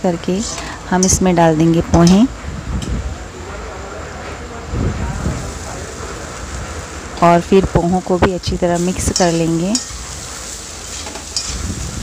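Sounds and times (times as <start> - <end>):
low sizzle: 0.0 - 12.0
spoon scraping metal pan: 10.8 - 11.6.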